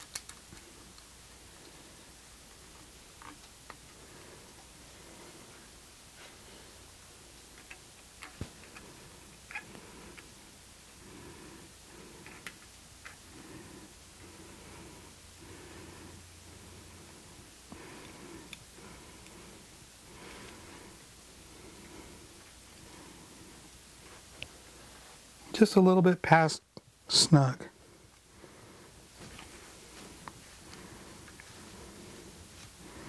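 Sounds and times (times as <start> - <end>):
small metal parts clicking: 0.0 - 0.4.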